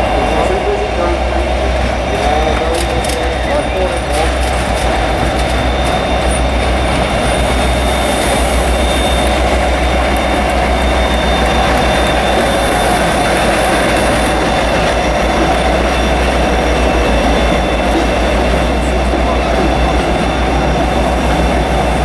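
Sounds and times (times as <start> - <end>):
diesel locomotive engine drone: 0.0 - 22.0
wheels squealing: 0.0 - 22.0.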